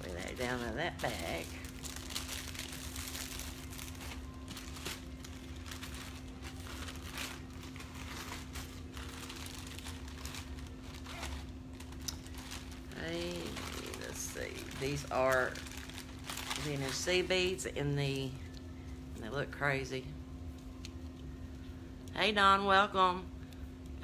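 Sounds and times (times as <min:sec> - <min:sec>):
bags rustling and crinkling: 0:00.0 - 0:18.3
steady low hum: 0:00.0 - 0:24.0.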